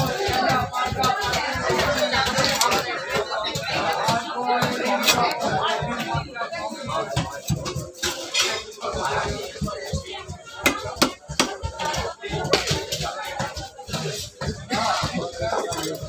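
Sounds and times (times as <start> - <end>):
background voices: 0.0 - 16.0.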